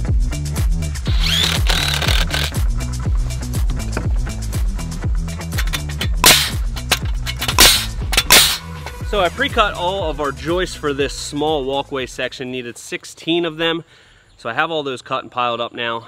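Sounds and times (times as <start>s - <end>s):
nail gun shots: 1.1s - 2.5s, 6.0s - 8.6s.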